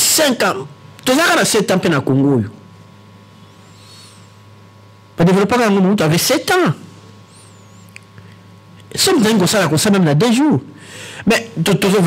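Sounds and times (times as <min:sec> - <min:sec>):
low hum of room tone: 0:00.0 - 0:12.0.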